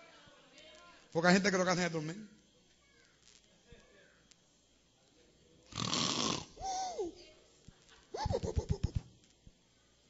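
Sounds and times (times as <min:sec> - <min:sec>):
man imitating snoring: 0:05.7 - 0:06.6.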